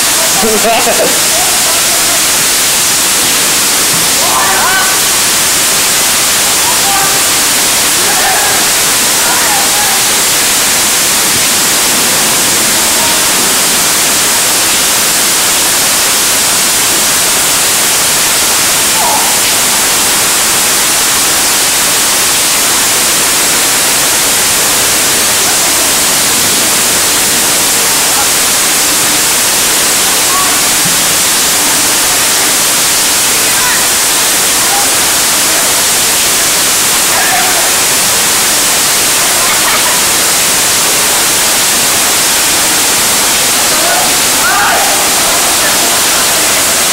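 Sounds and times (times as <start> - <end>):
faint voices: 0.0 - 46.9
heavy rain falling: 0.0 - 46.9.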